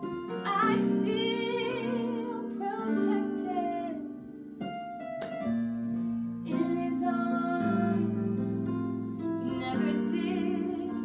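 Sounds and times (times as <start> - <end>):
electronic keyboard chords: 0.0 - 11.0
woman singing with vibrato: 0.4 - 4.1, 6.5 - 8.7, 9.4 - 11.0.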